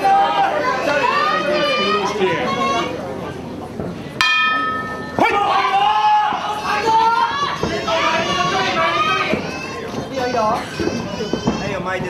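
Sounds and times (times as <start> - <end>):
ring bell ringing: 4.2 - 5.2.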